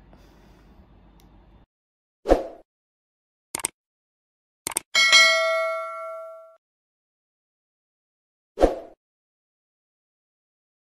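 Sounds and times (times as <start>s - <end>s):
notification bell chime: 5.0s - 6.6s.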